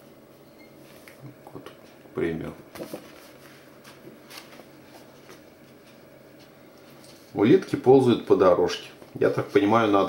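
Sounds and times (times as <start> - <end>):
paper page turning: 2.7 - 5.4
soft paper crinkles: 2.7 - 7.3.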